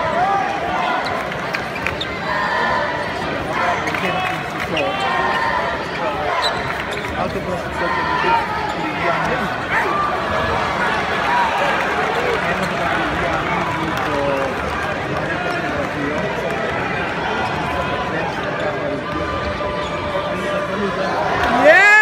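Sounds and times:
crowd talking: 0.0 - 22.0.

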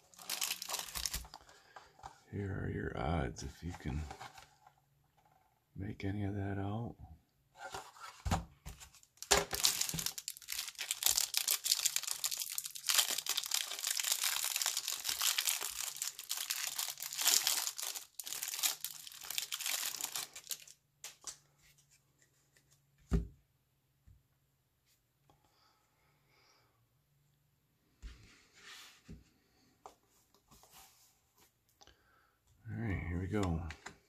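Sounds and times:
plastic wrapper tearing and crinkling: 0.0 - 1.4, 9.1 - 21.4.

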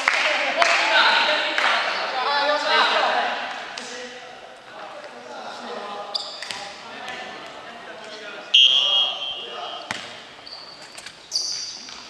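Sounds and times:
players' voices echoing: 0.0 - 10.5.

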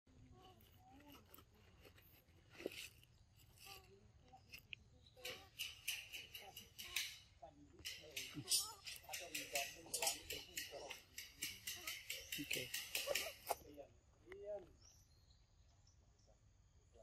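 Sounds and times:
faint indistinct voices: 0.1 - 15.0.

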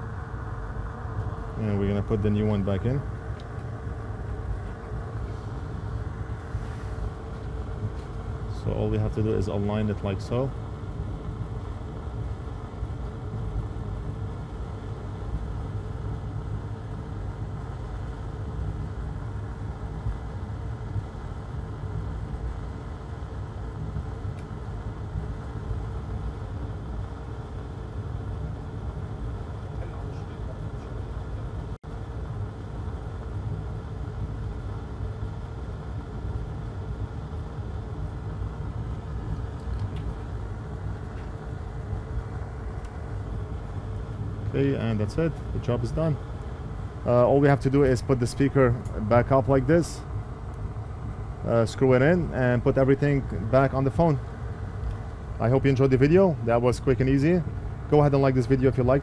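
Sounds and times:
low rumble and hum of room noise: 0.0 - 59.0.

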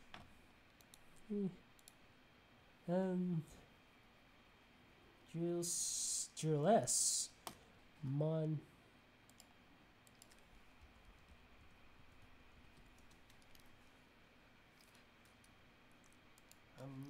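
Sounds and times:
person humming: 1.3 - 1.6, 2.9 - 3.6.

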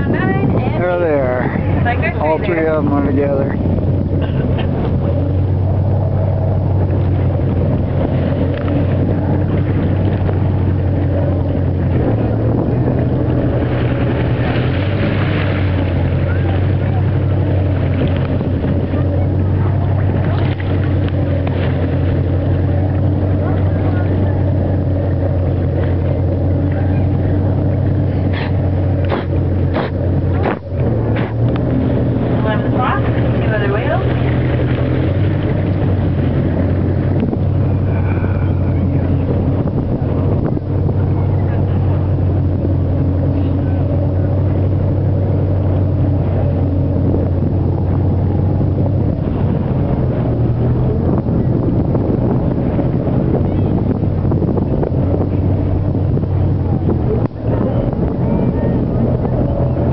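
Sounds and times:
boat engine droning: 0.0 - 59.9
wind on microphone: 0.0 - 59.9.

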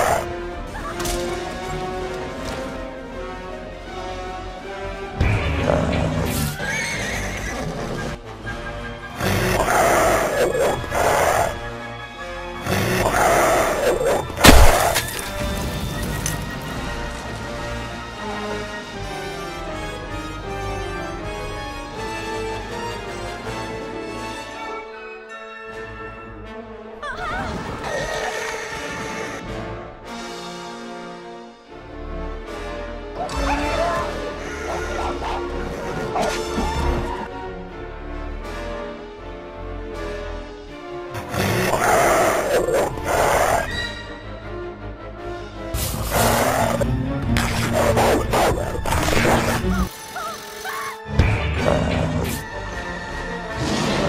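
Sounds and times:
cartoon wolves barking and snarling: 0.0 - 0.3, 9.2 - 11.6, 12.6 - 15.2, 33.2 - 37.2, 41.2 - 43.8, 45.8 - 51.0
dramatic film music: 0.0 - 54.0
cartoon horse whinnying: 6.4 - 8.2, 46.1 - 51.1.

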